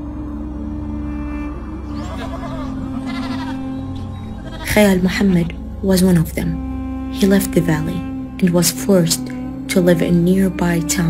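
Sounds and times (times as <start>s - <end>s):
low music drone: 0.0s - 11.0s
goat bleating: 1.9s - 4.8s.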